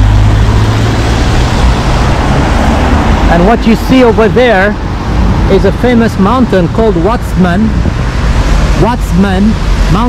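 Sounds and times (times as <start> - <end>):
cars driving past: 0.0 - 10.0.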